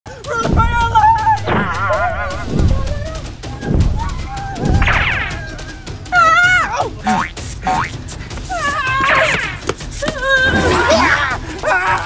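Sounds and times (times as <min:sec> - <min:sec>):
background music: 0:00.1 - 0:12.0
drum beats: 0:00.1 - 0:12.0.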